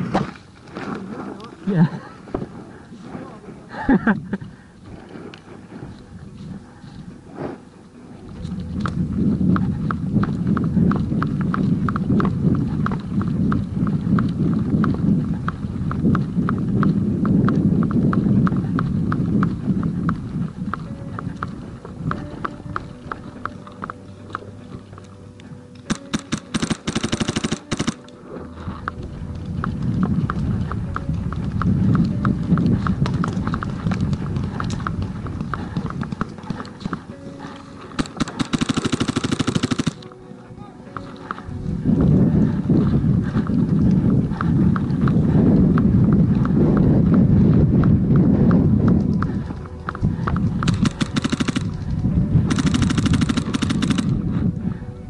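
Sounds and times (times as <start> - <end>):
paintball marker rapid shots: 25.9 - 28.1, 38.0 - 40.1, 50.6 - 51.8, 52.5 - 54.2.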